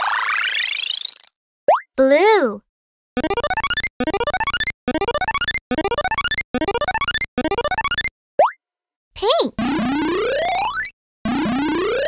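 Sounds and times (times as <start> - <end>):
rising runs of plinking notes: 3.2 - 8.1.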